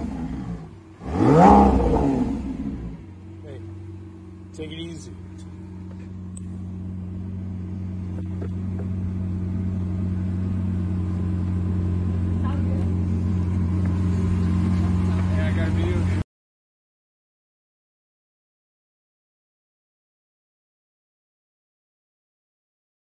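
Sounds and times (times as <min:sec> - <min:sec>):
car engine idling: 0:00.0 - 0:16.2.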